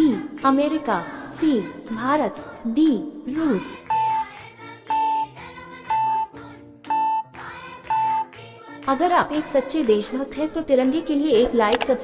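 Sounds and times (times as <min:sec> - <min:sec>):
light background music: 0:00.0 - 0:12.0
countdown timer beeps: 0:03.3 - 0:04.3, 0:04.9 - 0:06.3, 0:06.9 - 0:08.3.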